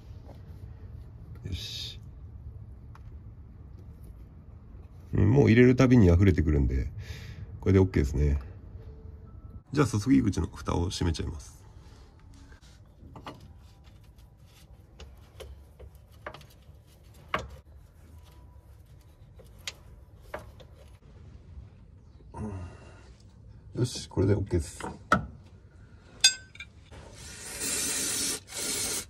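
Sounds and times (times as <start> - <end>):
aerosol spray hiss: 27.2 - 29.0.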